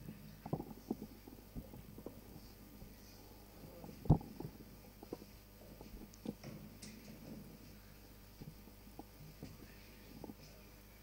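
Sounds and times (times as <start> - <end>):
low background noise: 0.0 - 11.0
faint dull thumps: 3.8 - 7.6.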